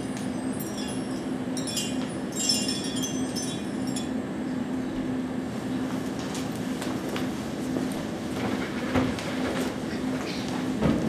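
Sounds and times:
rhythmic rolling clatter: 0:00.0 - 0:04.3
steady low hum: 0:00.0 - 0:11.0.

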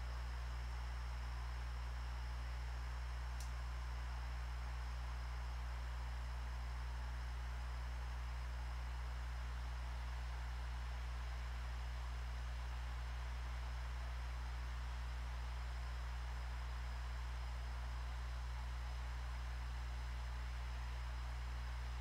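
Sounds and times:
low electrical hum: 0:00.0 - 0:22.0.

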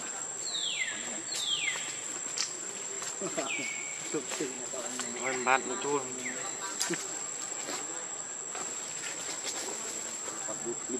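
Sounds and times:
insects droning: 0:00.0 - 0:10.9.

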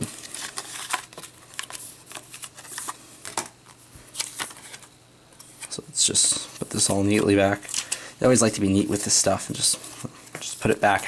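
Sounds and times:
paper and card rustling: 0:00.0 - 0:11.0.

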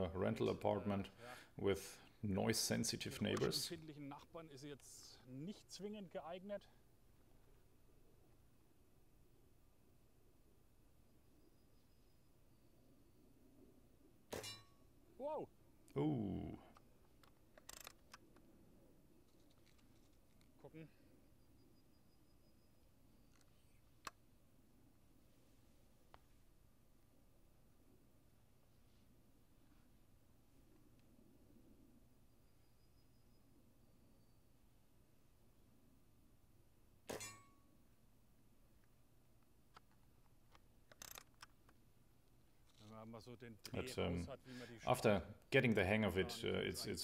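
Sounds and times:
air rifle lever clicks: 0:16.7 - 0:18.5, 0:39.7 - 0:41.8.

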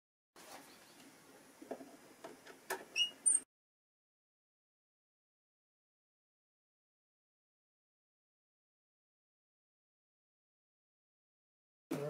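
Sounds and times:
short high squeaks: 0:02.9 - 0:03.5.

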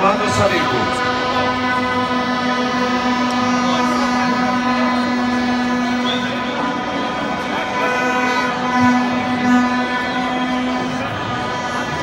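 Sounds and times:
crowd noise: 0:00.0 - 0:12.0
horn blowing long note: 0:00.0 - 0:12.0.

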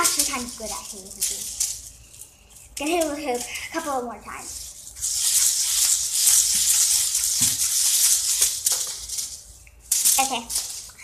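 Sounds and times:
hula hoop rattling hiss: 0:00.0 - 0:11.0.

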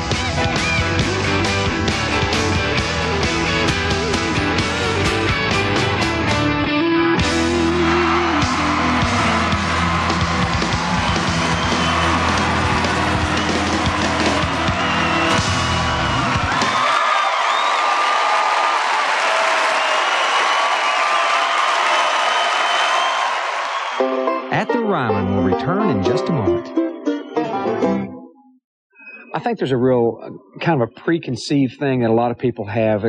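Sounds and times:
country band playing: 0:00.0 - 0:16.7, 0:24.0 - 0:28.2
crowd cheering and clapping: 0:00.0 - 0:25.6.

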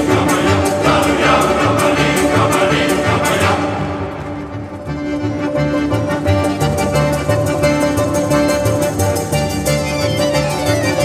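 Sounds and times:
choir singing: 0:00.0 - 0:05.0
steady percussive beat: 0:00.0 - 0:05.5
instrumental backing: 0:00.0 - 0:11.0.

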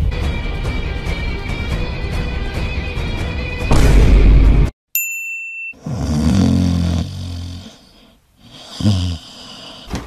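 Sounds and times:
person snoring: 0:05.8 - 0:10.0.

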